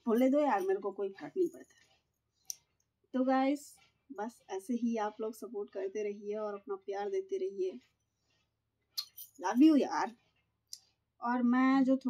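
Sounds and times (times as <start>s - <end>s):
woman speaking: 0.0s - 1.6s, 3.2s - 7.8s, 9.0s - 10.1s, 11.2s - 12.0s.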